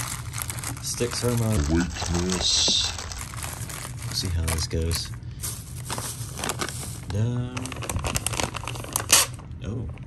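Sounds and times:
plastic bags crinkling: 0.0s - 9.5s.

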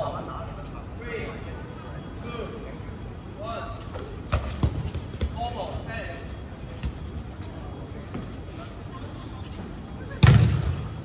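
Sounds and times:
dodgeballs thudding: 4.3s - 5.6s, 10.2s - 11.0s.

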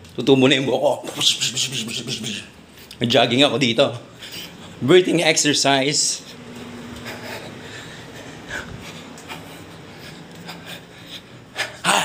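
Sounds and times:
man panting: 6.2s - 12.0s.

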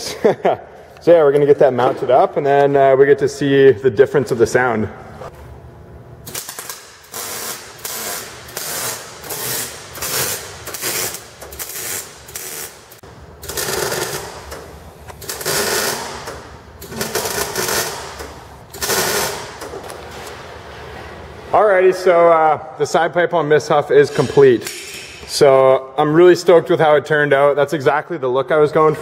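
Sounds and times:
welder arc crackling: 6.3s - 14.4s.

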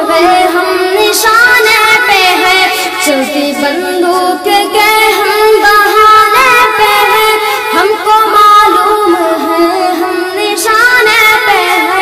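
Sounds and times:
boy singing devotional song: 0.0s - 12.0s.

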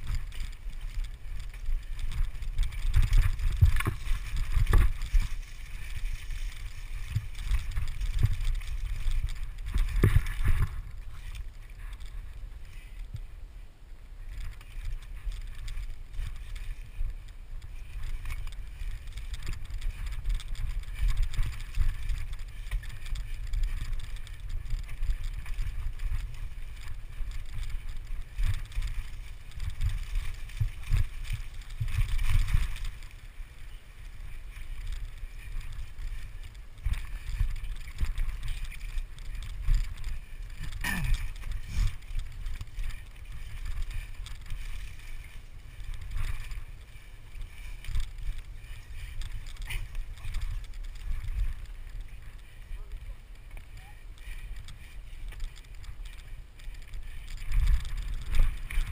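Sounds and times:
bike rattling over ground: 0.0s - 58.9s
wind rumble on microphone: 0.0s - 58.9s.

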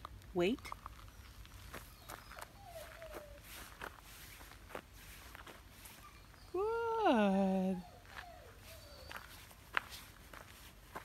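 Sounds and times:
footsteps on gravel: 0.0s - 6.4s, 8.0s - 11.0s.

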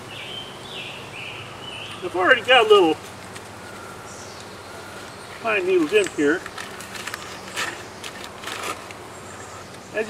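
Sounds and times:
dry rustling and scraping: 5.0s - 9.6s.

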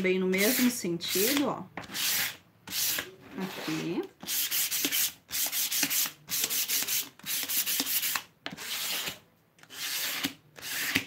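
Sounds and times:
sandpaper rubbing on wood: 0.4s - 11.0s.

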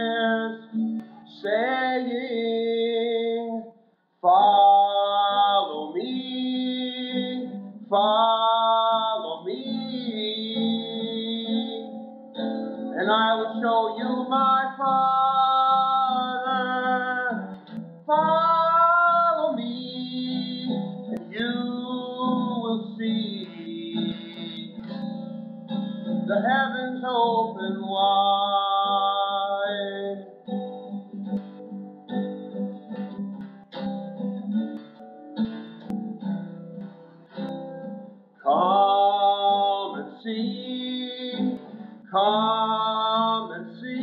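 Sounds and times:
person singing slow song: 0.0s - 32.0s, 38.4s - 44.0s
acoustic-electric guitar: 0.0s - 44.0s.

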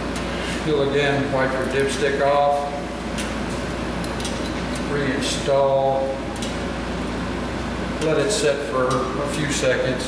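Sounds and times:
mechanical hum with hiss: 0.0s - 10.0s.

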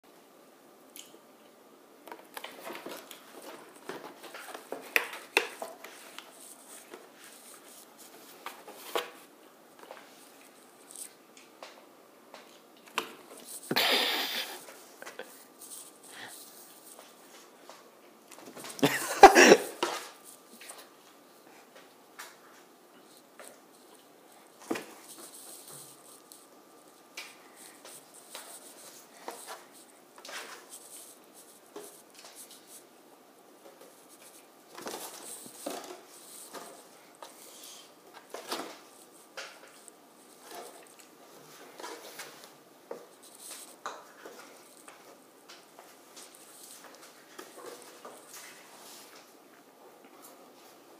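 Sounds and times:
cardboard rustling: 2.1s - 11.2s, 33.8s - 37.6s.

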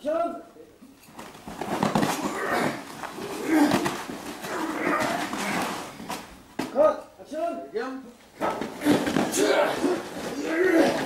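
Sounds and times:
fighters grunting and shouting: 2.1s - 5.9s, 8.4s - 11.0s.

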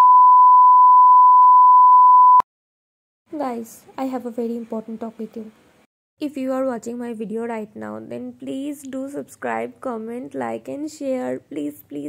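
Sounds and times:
steady test tone beep: 0.0s - 2.4s.

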